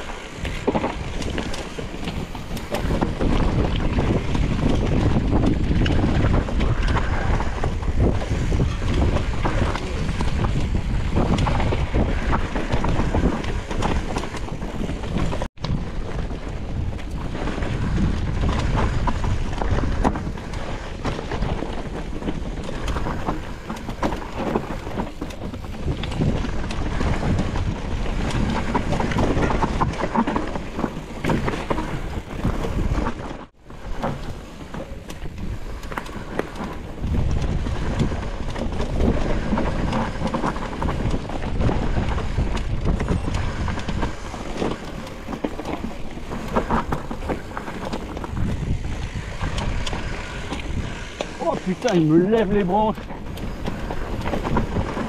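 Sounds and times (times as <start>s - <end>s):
bike rattling: 0.0s - 55.0s
bike tyres on dirt: 0.0s - 55.0s
wind buffeting microphone: 0.0s - 55.0s.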